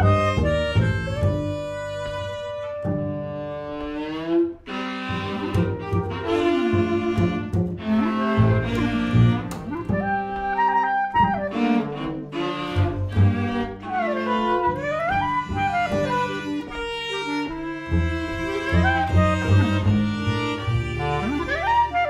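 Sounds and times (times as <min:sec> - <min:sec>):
clarinet: 0:00.0 - 0:22.0
double bass low sustained notes: 0:00.0 - 0:22.0
viola: 0:00.0 - 0:22.0.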